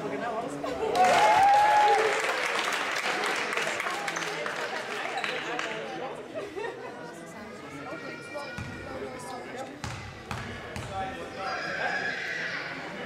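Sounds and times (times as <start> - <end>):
voices echoing in hall: 0.0 - 13.0
basketball bouncing on floor: 9.8 - 11.0.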